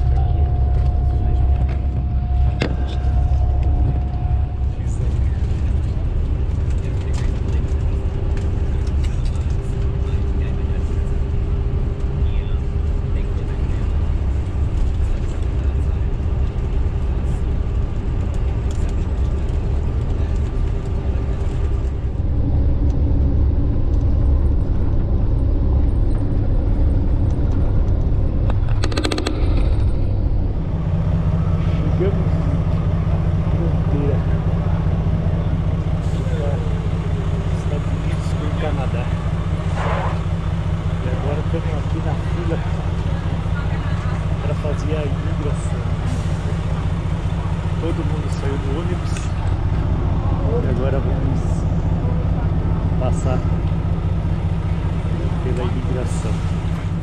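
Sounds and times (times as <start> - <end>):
bus engine and tyres rumbling: 0.0 - 57.0
faint steady whine: 0.0 - 57.0.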